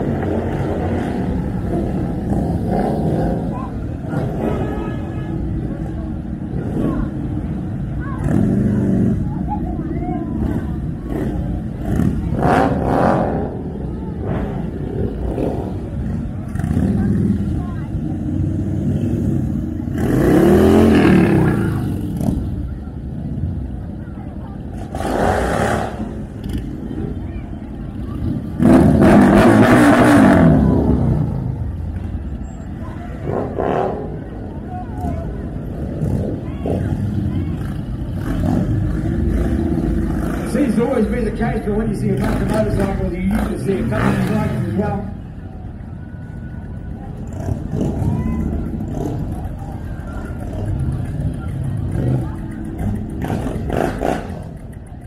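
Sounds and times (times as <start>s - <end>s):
motorcycle engine revving: 0.0s - 4.9s, 5.6s - 9.4s, 10.3s - 23.7s, 24.6s - 45.2s, 47.2s - 55.0s
motorcycles rumbling past: 0.0s - 55.0s.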